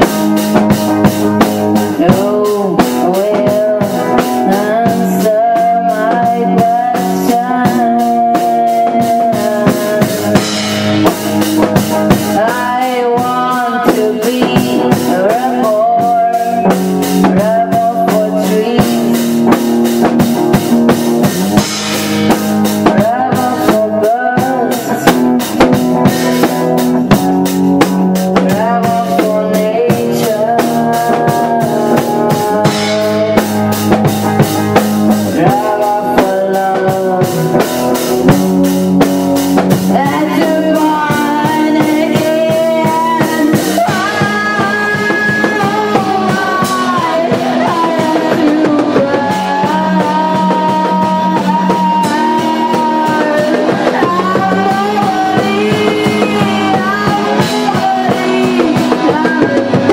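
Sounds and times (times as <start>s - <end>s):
drum kit beat: 0.0s - 59.9s
guitar: 0.0s - 59.9s
woman singing: 0.0s - 59.9s.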